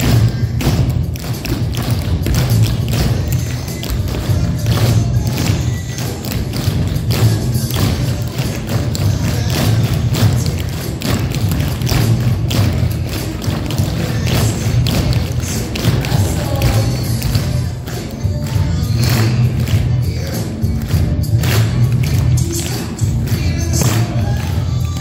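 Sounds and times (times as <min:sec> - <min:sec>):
music with heavy bass: 0:00.0 - 0:25.0.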